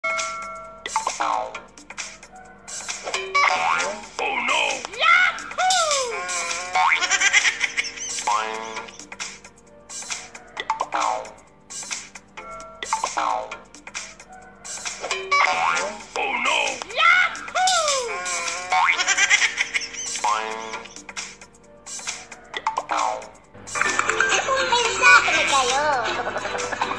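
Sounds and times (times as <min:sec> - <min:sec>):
music: 0:00.0 - 0:26.9
rapidly warbling tones: 0:00.1 - 0:26.9
boing tone sliding down: 0:03.1 - 0:04.1, 0:15.0 - 0:16.0.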